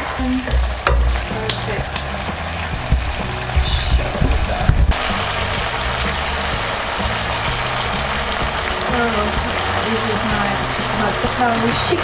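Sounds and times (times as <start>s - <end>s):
background music: 0.0s - 12.0s
food sizzling in a frying pan: 0.0s - 12.0s.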